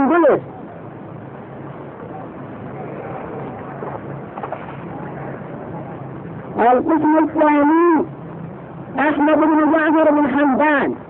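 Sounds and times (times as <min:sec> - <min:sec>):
recording hiss and hum: 0:00.0 - 0:11.0.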